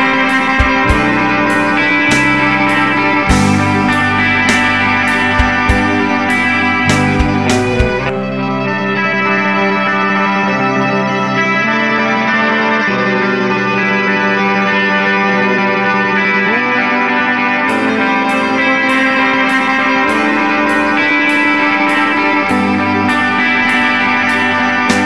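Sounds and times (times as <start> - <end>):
high sharp percussive hits: 0.0 - 8.1
electric guitar chords ringing: 0.0 - 25.0.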